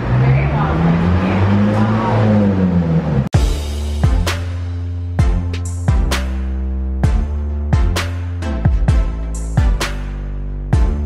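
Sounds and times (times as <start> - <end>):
vehicle engine drone: 0.0 - 5.2
music with a beat: 3.4 - 11.0.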